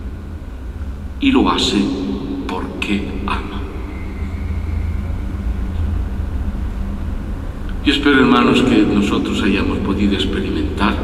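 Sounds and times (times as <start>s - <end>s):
faint hum: 0.0s - 11.0s
low background rumble: 0.0s - 11.0s.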